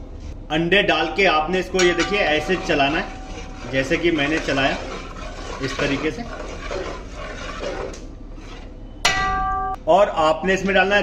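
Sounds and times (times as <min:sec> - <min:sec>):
metal ladle clinking on pot: 0:01.8 - 0:03.6, 0:09.1 - 0:09.8.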